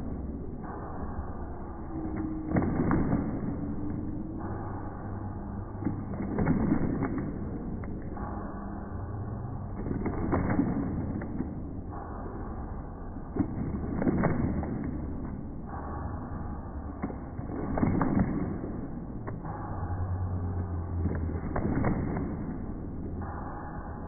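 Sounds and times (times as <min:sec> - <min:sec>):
audience clapping: 0:02.2 - 0:03.9, 0:05.8 - 0:08.1, 0:09.7 - 0:11.6, 0:13.4 - 0:15.3, 0:17.0 - 0:19.5, 0:20.9 - 0:22.7.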